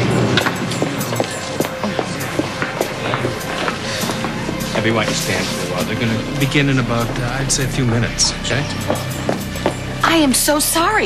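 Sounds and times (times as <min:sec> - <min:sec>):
crowd hubbub: 0:00.0 - 0:08.1
footsteps on hard floor: 0:00.4 - 0:07.3, 0:08.6 - 0:10.2.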